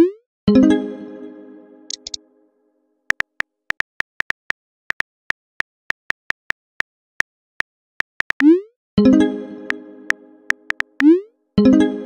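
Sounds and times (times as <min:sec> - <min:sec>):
phone keyboard key taps: 0:01.9 - 0:02.2
quick ticks: 0:01.9 - 0:02.2, 0:03.1 - 0:05.1, 0:10.6 - 0:11.1.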